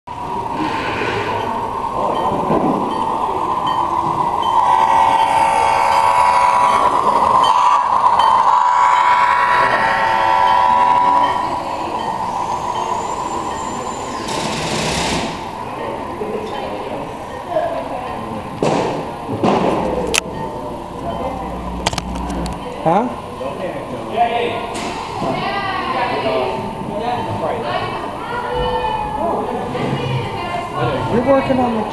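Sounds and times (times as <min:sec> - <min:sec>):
people's voices: 0:00.1 - 0:31.9.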